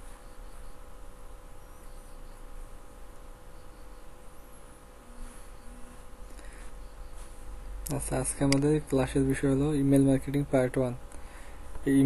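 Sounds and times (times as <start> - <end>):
background hiss: 0.0 - 12.0
faint buzzing hum: 0.0 - 12.0.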